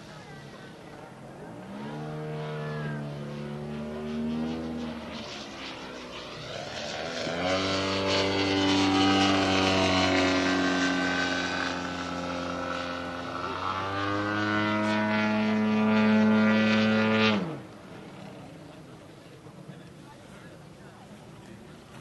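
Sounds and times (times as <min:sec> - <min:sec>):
model airplane engine and propeller: 0:00.0 - 0:22.0.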